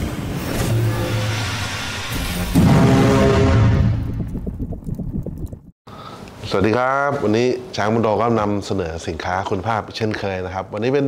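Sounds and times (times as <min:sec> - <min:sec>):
engine-like vehicle sound effect: 0:00.0 - 0:04.0.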